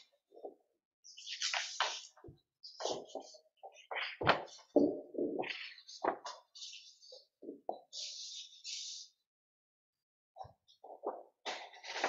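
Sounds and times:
paper rustling: 0:01.1 - 0:04.8, 0:05.4 - 0:09.1, 0:10.7 - 0:12.0.

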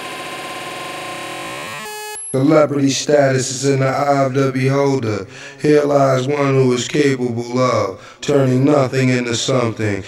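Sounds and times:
noisy synthesizer wash: 0:00.0 - 0:02.5
steady pitched tone: 0:00.0 - 0:02.5.

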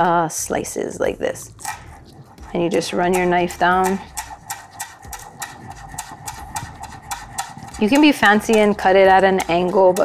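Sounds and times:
knife chopping on cutting board: 0:01.6 - 0:10.0.

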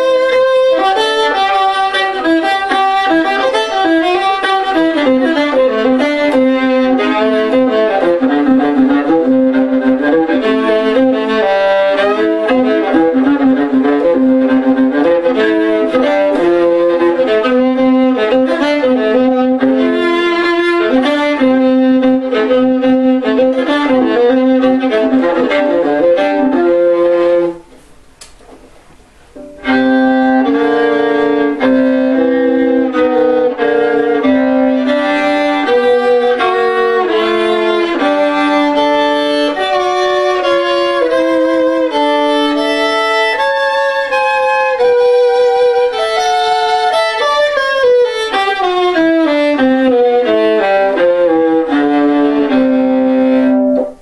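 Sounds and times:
solo fiddle tune: 0:00.0 - 0:27.7, 0:29.4 - 0:54.0.

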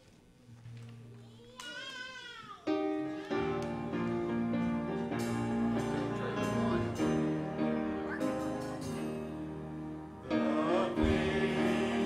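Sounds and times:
keyboard sustained chords: 0:03.5 - 0:12.0.

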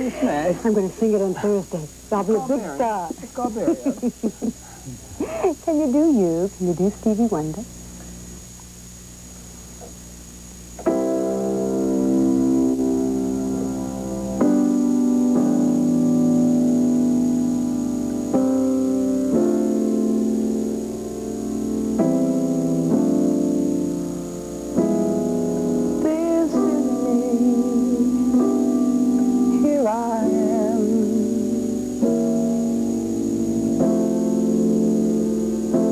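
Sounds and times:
faint steady hum: 0:00.0 - 0:35.9
keyboard chord held: 0:10.8 - 0:35.9
man singing with vibrato: 0:26.0 - 0:28.4.

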